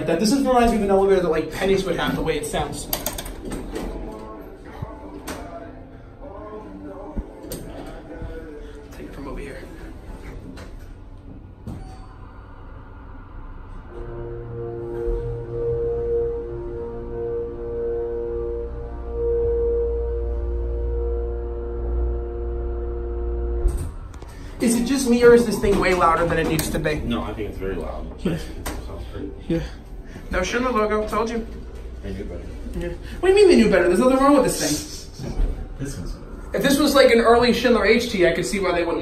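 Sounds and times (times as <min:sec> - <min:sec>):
elevator machinery humming: 0:00.0 - 0:38.4
steady tones: 0:00.0 - 0:39.0.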